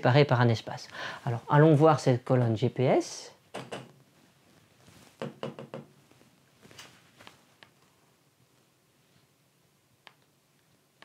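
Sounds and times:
pen tapping on touchscreen: 5.2s - 5.9s.

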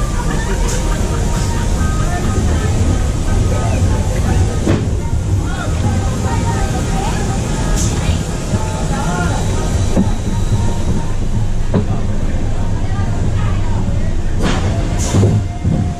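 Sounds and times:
roller coaster wheels rumbling on rails: 0.0s - 15.9s.

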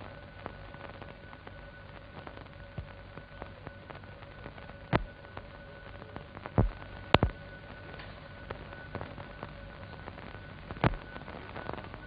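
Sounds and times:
crackles and clicks: 0.0s - 12.0s
faint hum: 0.0s - 12.0s
film soundtrack hiss: 0.0s - 12.0s.

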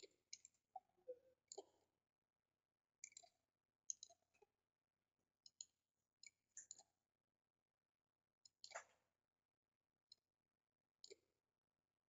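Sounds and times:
faint computer mouse clicks: 8.5s - 9.0s.

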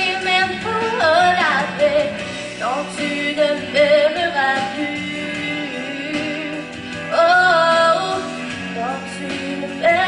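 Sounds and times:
backing track music: 0.0s - 10.0s
woman singing into microphone: 0.0s - 10.0s.

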